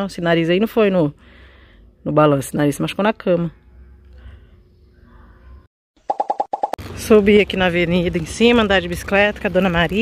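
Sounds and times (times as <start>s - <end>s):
faint outdoor background: 0.0s - 10.0s
short bright popping blips: 6.1s - 6.8s.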